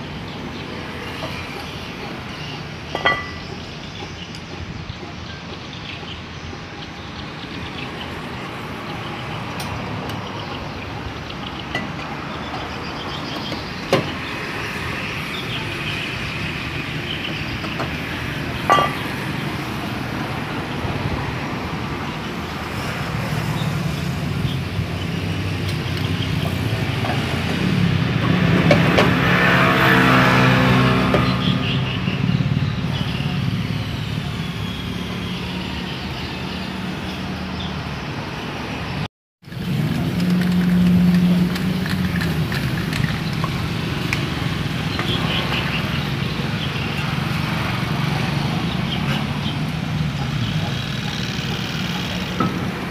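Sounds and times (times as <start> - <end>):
workshop background noise: 0.0 - 37.8, 39.4 - 52.9.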